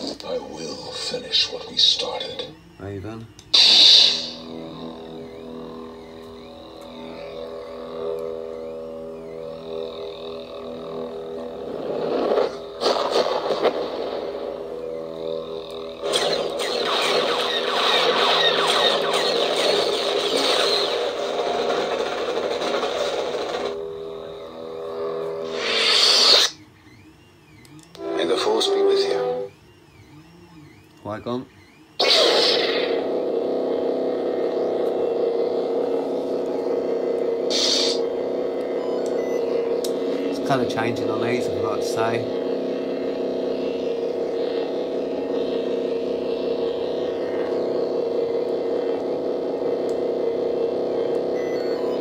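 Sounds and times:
lightsaber ignition: 0.0s - 29.5s, 30.4s - 52.0s
electric hum: 0.0s - 52.0s
lightsaber retraction: 3.6s - 4.4s, 32.0s - 33.0s, 37.5s - 38.0s
crackling effect: 11.6s - 15.0s, 15.6s - 23.8s, 32.0s - 33.1s.

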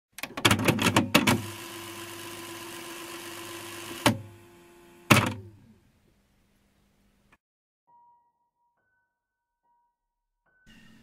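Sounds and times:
tape mechanism clicks and clunks: 0.2s - 2.4s, 3.2s - 4.4s, 5.0s - 5.5s
tape motor humming: 0.9s - 5.6s.

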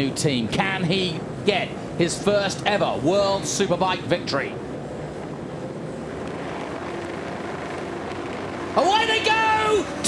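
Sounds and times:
motorcycle engines revving: 0.0s - 10.0s.

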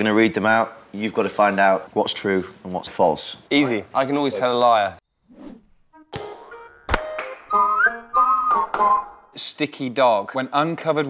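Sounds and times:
whistled melody over music: 6.0s - 9.3s.

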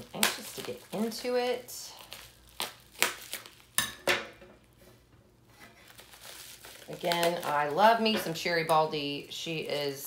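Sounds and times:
scissors snipping plastic: 0.0s - 1.3s, 6.8s - 8.8s
plastic crinkling: 0.0s - 3.8s, 5.6s - 10.0s.

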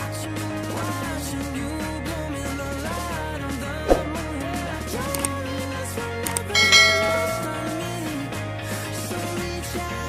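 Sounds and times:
pop song: 0.0s - 10.0s
bell ding: 6.6s - 8.1s.

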